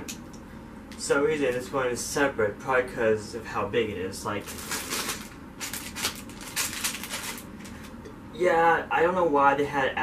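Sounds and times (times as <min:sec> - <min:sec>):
plastic bag crinkling: 0:04.4 - 0:07.9.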